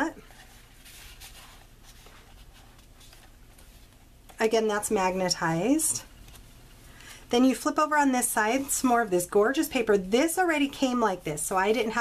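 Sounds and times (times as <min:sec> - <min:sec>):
cardstock pages rustling: 0:00.2 - 0:06.9.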